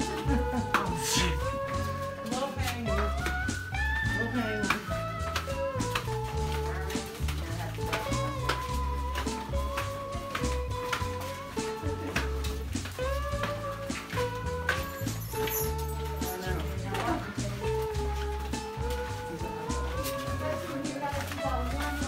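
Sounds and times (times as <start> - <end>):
background music with deep bass: 0.0 - 22.0.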